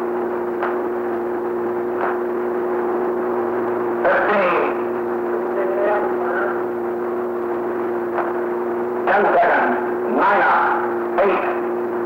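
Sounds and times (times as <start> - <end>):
low two-tone hum: 0.0 - 12.0.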